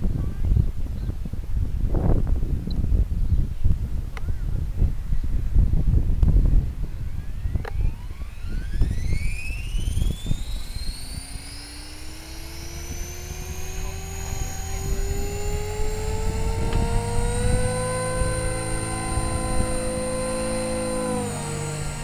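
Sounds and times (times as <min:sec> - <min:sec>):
model helicopter rotor whine: 0:04.6 - 0:22.0.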